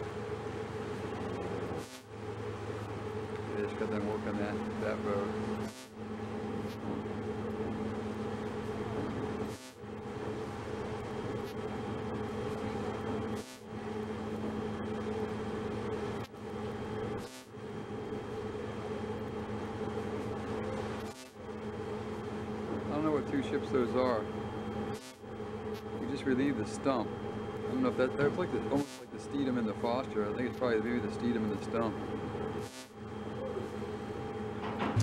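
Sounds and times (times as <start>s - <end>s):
ship machinery hum: 0.0s - 35.0s.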